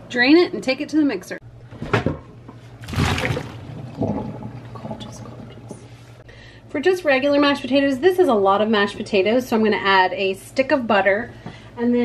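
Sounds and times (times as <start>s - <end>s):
water pouring into colander: 2.8s - 5.8s
water running down drain: 2.8s - 6.0s.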